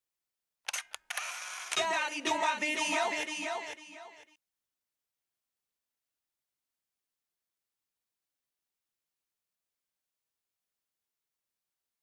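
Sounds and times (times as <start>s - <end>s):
sharp clicks: 0.7s - 1.8s.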